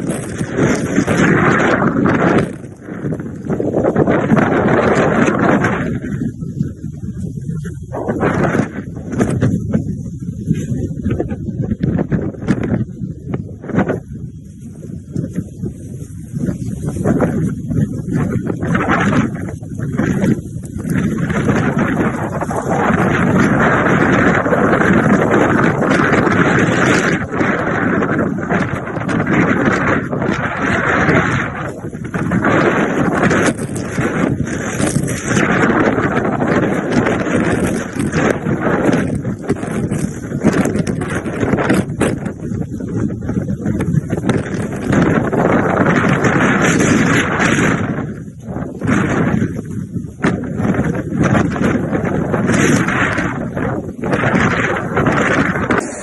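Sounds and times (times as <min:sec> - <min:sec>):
wind gusting on microphone: 0:00.0 - 0:56.0.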